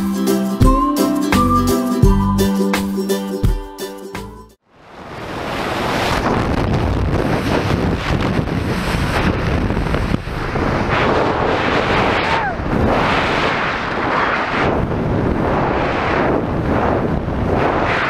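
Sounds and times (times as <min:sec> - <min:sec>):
backing music: 0:00.0 - 0:04.6
wind rushing on microphone: 0:04.8 - 0:18.0.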